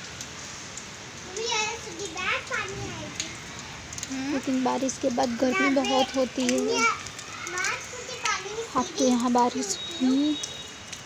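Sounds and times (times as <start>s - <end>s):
young child talking loudly: 1.3s - 3.4s, 5.4s - 10.2s.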